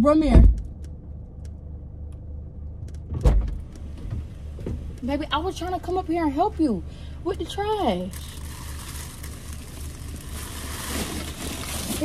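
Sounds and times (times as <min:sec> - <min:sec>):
low rumble inside car: 0:00.0 - 0:12.0
heavy thump: 0:03.1 - 0:04.9.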